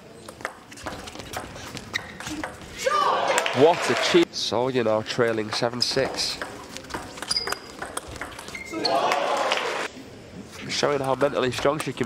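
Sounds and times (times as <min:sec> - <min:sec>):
crowd noise: 0:00.0 - 0:12.0
table tennis ball clicking: 0:05.5 - 0:08.6
short high squeaks: 0:07.2 - 0:07.7.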